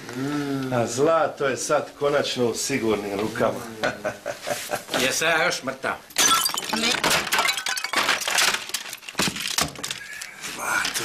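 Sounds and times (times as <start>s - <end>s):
crashing breaking impacts: 6.2s - 10.0s.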